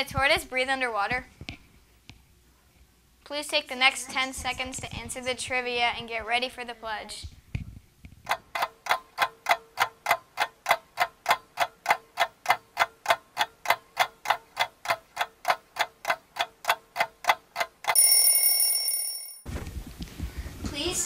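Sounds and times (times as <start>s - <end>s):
clock ticking: 8.3s - 18.4s
loud ringing tone: 17.9s - 19.5s.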